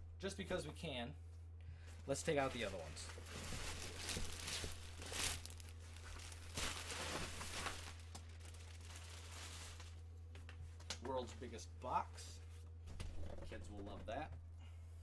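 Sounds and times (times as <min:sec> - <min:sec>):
plastic bag crinkling: 0:02.4 - 0:10.0.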